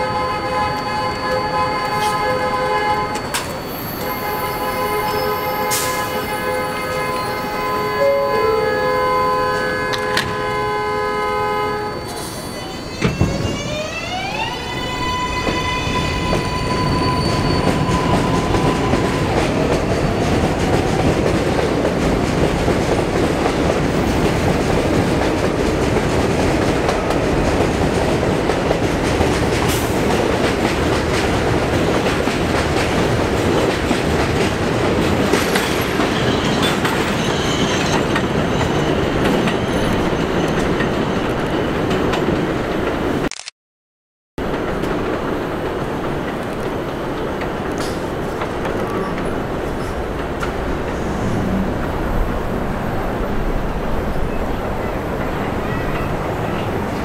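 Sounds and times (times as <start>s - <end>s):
train cars rumbling over rails: 0.0s - 43.2s, 44.4s - 57.0s.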